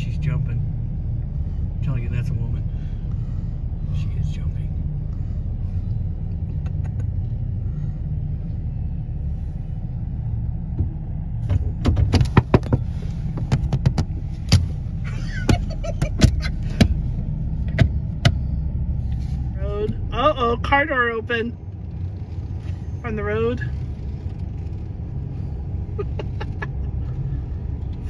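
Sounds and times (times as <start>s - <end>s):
car cabin low rumble: 0.0s - 28.0s
hands banging on car body: 11.5s - 12.9s.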